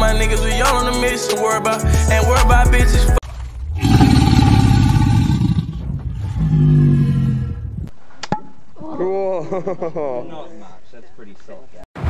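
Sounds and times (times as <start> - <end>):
roaring whoosh with deep rumble: 3.2 - 7.9.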